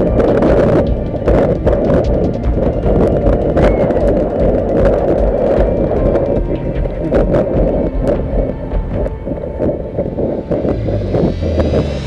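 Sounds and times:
background music: 0.0 - 12.0
low steady drone: 0.0 - 12.0
wind buffeting camera: 0.0 - 12.0.

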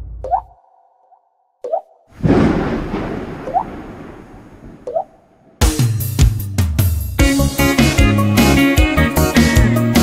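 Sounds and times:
water-drop plinks rising in pitch: 0.2 - 0.6, 1.6 - 2.1, 3.4 - 3.7, 4.8 - 5.2
rushing rain noise: 2.1 - 4.8.

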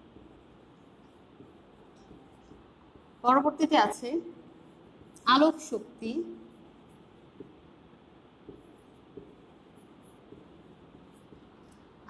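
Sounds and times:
marker tapping on whiteboard: 0.0 - 2.7, 7.3 - 7.6, 8.4 - 11.8.

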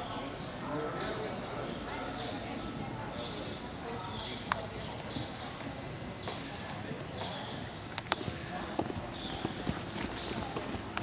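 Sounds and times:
horses trotting on dirt: 7.5 - 11.0
sharp hoof clicks: 8.0 - 11.0.

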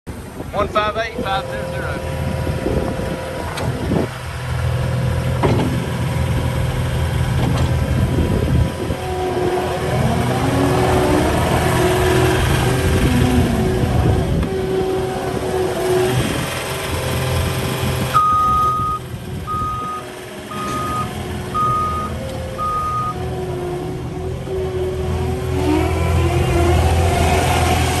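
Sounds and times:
diesel engine running: 0.1 - 28.0
back-up alarm beeping: 18.2 - 23.2.

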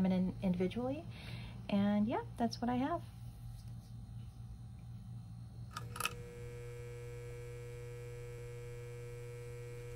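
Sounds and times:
low electrical hum: 0.0 - 9.9.

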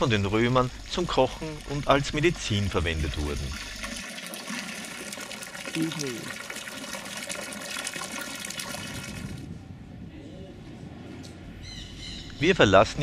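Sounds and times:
fountain water splashing: 0.0 - 9.5.

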